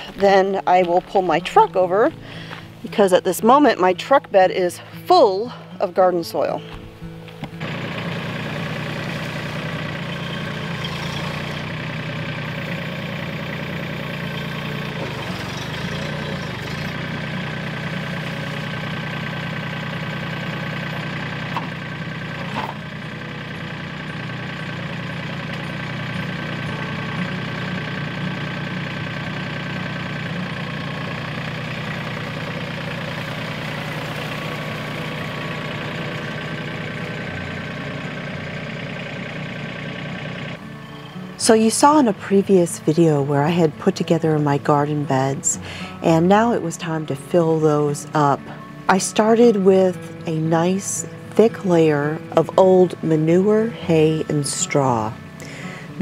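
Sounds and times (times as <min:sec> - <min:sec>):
tractor diesel engine running: 0:00.0 - 0:56.0.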